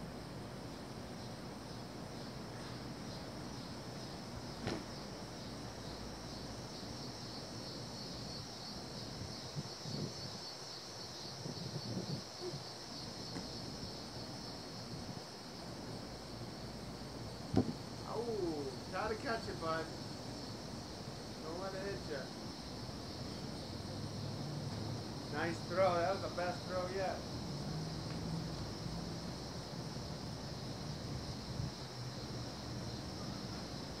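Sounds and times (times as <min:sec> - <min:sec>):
insects chorus: 0:00.0 - 0:34.0
sharp knock: 0:04.6 - 0:04.9, 0:17.5 - 0:17.8.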